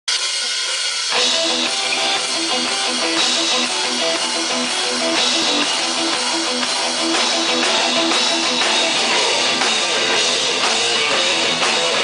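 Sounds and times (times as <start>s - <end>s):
drums: 0.0s - 12.0s
electric guitar riff: 0.2s - 12.0s.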